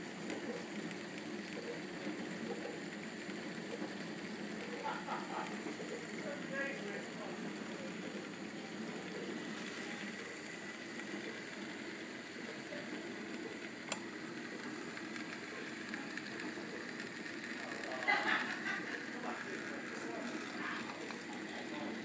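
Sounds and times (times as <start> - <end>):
stove burning low rush: 0.0 - 22.0.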